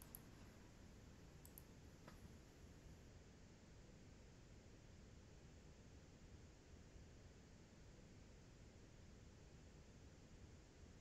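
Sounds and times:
faint clicks: 0.0s - 0.6s, 1.4s - 2.3s.

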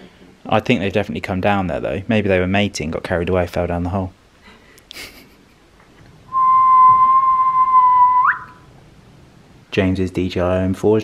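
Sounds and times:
whistle-like note sliding upward: 6.3s - 8.7s.

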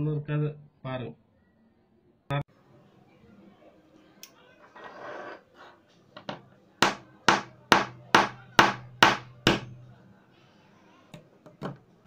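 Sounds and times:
pliers striking ceramic: 6.2s - 9.9s.

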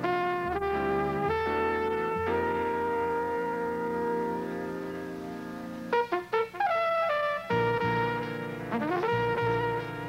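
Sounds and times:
trumpet quick notes: 0.0s - 5.3s, 5.9s - 10.0s
jazz horns holding chord: 0.0s - 10.0s.

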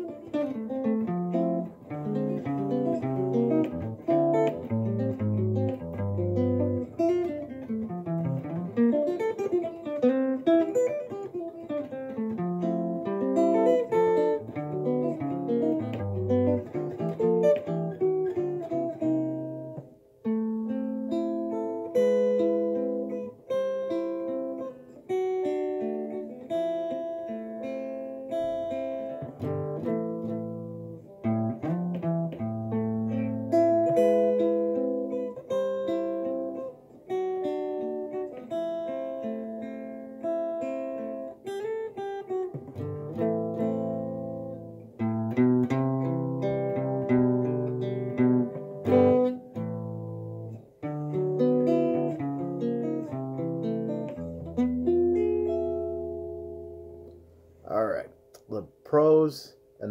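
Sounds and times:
fingerpicked guitar: 0.0s - 59.9s.

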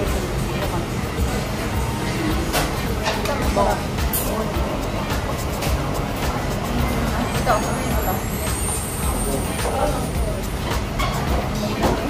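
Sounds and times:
background music: 0.0s - 12.0s
indistinct voices: 0.0s - 12.0s.

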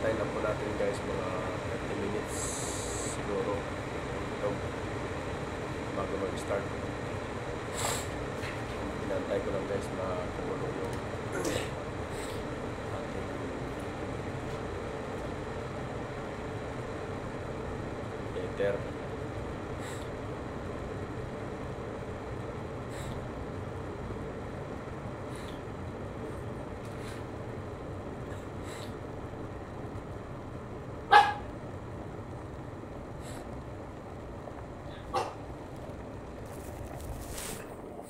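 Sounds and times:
steady background hiss: 0.0s - 38.0s
dog barking: 31.1s - 31.5s, 35.1s - 35.4s.

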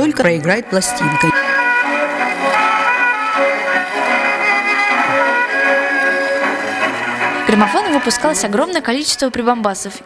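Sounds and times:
gramophone playing instrumental music: 0.4s - 8.4s.

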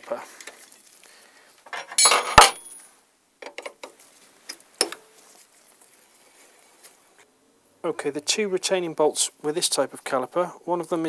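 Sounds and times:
metal tools clinking on bolts: 1.7s - 2.8s.

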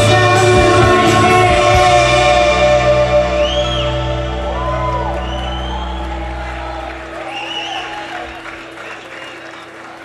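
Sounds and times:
audience cheering and whooping: 3.3s - 10.0s.

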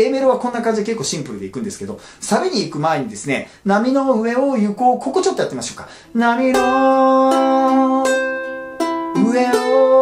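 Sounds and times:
man singing: 3.7s - 10.0s
ukulele picking chords: 6.1s - 10.0s.

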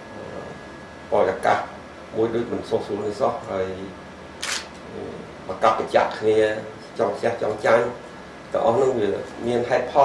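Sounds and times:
man talking: 4.9s - 10.0s.

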